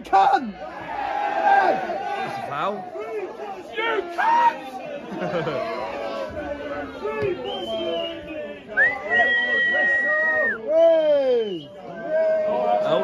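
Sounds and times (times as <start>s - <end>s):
football crowd chattering: 0.0s - 13.0s
loud shouts close by: 0.2s - 7.8s.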